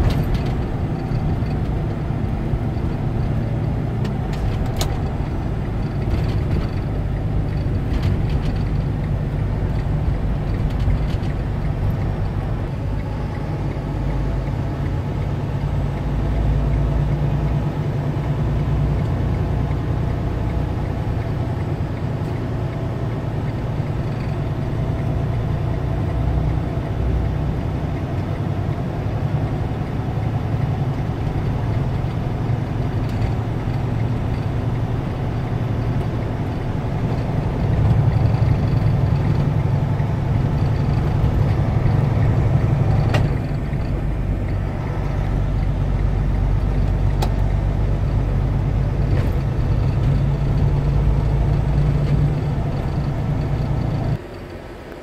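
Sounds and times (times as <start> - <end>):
diesel engine rumble: 0.0 - 55.0
road noise: 0.0 - 55.0.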